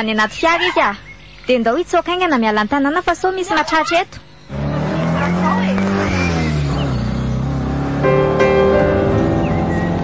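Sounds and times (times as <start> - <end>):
car engine running: 4.5 - 10.0.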